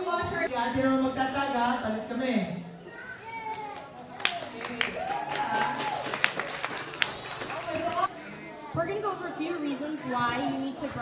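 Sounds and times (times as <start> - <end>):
children chattering: 2.7 - 4.7, 6.4 - 11.0.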